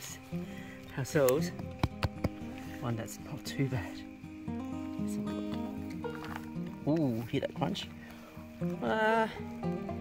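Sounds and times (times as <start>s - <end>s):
background music with stepping tones: 0.0s - 10.0s.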